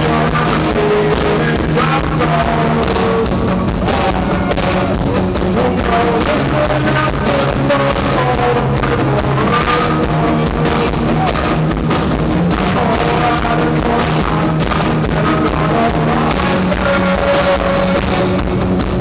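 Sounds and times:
bass guitar: 0.0s - 19.0s
drum kit: 0.0s - 19.0s
electric guitar: 0.0s - 19.0s.

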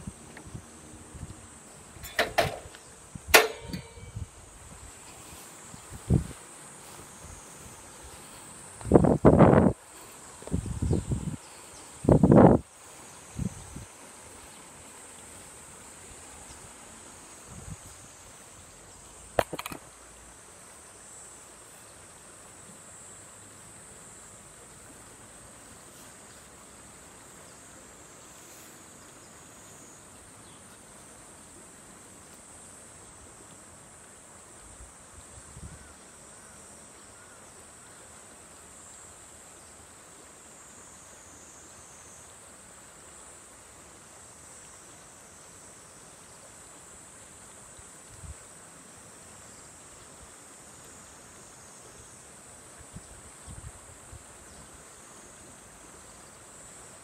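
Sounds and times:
high insect buzz: 0.0s - 31.5s
shallow river flowing: 12.6s - 35.4s, 36.0s - 57.0s.

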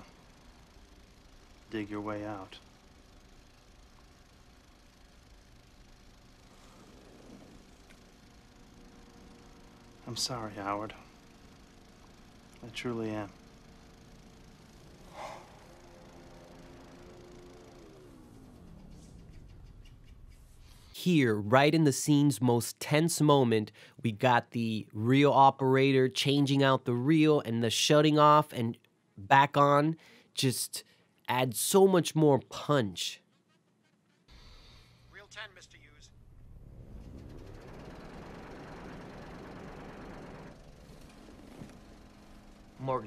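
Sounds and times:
film projector motor humming: 0.0s - 22.3s, 36.2s - 43.0s.

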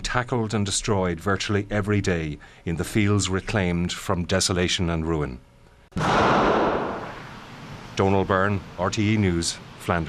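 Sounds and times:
explosion blast: 6.0s - 7.5s.

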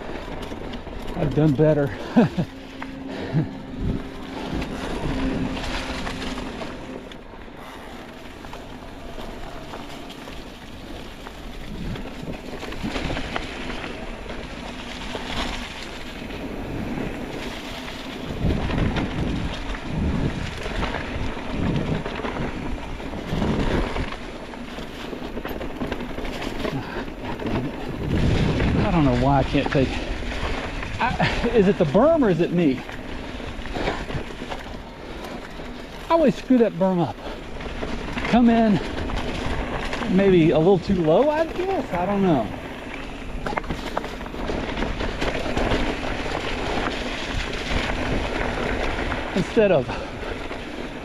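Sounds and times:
bike rattling over bumps: 0.0s - 51.0s
tyres rolling through dry leaves: 0.0s - 51.0s
wind on microphone: 16.3s - 24.2s, 26.0s - 31.6s.

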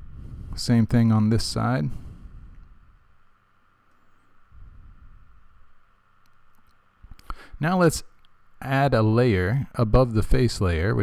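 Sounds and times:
microphone hum: 0.0s - 1.0s, 1.8s - 3.2s, 4.4s - 5.9s
soft low rumble: 0.0s - 7.2s.

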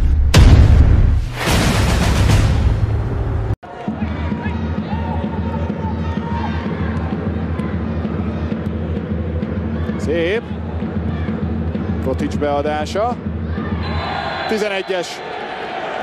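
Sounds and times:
stadium crowd noise: 3.6s - 16.0s.

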